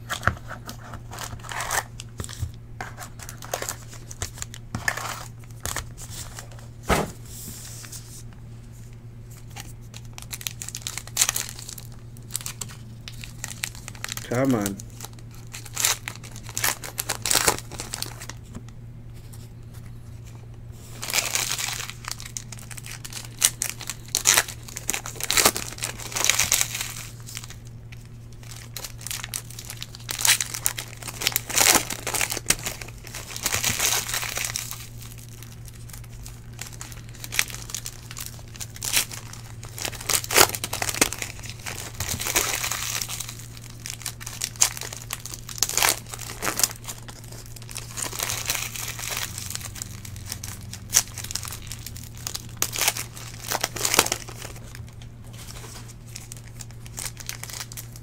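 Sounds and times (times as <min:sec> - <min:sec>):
foil wrappers tearing and crinkling: 0:00.0 - 0:06.7, 0:09.3 - 0:18.4, 0:20.3 - 0:58.0
steady low hum: 0:00.0 - 0:58.0.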